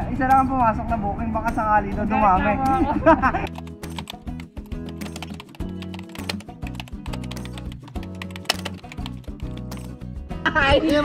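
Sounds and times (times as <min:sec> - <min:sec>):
background music with low notes: 0:00.0 - 0:11.0
keyboard typing clicks: 0:03.5 - 0:10.0.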